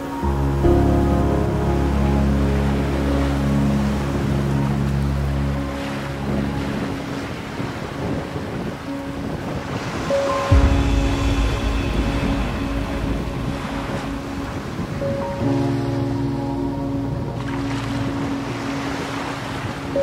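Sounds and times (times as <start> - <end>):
ocean surf hissing over sand: 0.0 - 20.0
slow music of held chords: 0.0 - 20.0
deep bass note: 10.5 - 15.6.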